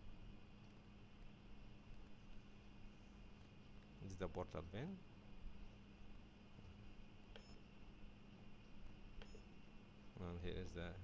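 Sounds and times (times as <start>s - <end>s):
faint low hum: 0.0s - 11.0s
faint clicks with beep: 7.3s - 7.6s, 9.2s - 9.5s.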